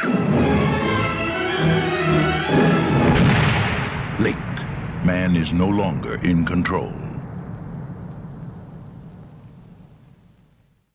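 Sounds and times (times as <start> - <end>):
loud shotgun blast with echo: 3.1 - 5.4.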